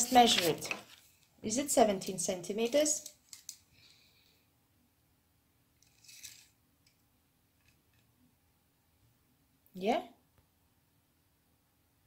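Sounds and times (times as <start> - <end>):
tape scraping on fabric: 5.8 - 6.6.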